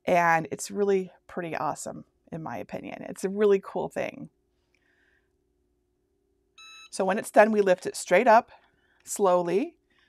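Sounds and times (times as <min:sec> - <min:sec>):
short electronic beep: 0:06.6 - 0:06.9.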